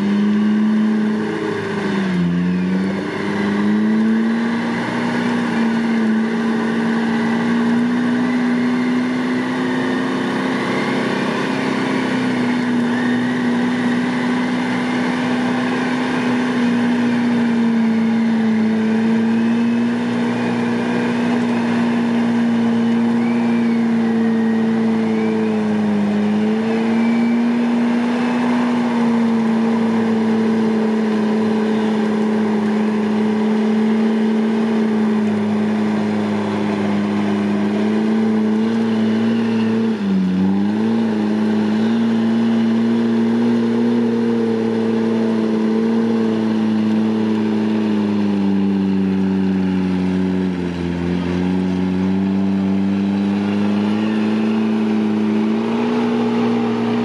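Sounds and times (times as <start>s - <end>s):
winch mechanical drone: 0.0s - 57.0s.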